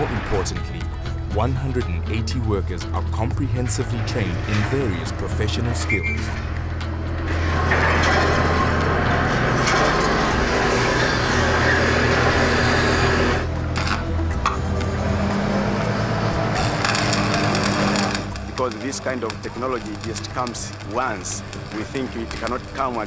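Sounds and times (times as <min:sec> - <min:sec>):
background music: 0:00.0 - 0:23.0
heavy machinery engine hum: 0:03.8 - 0:22.8
arc welding crackle: 0:05.9 - 0:14.1, 0:15.1 - 0:23.0.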